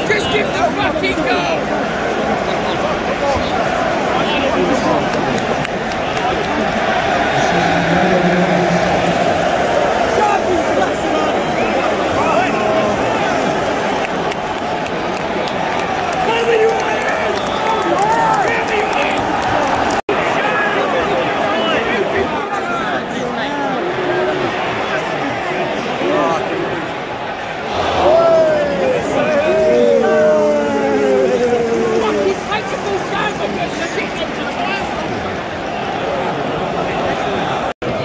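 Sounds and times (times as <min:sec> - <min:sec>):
stadium crowd hubbub: 0:00.0 - 0:38.0.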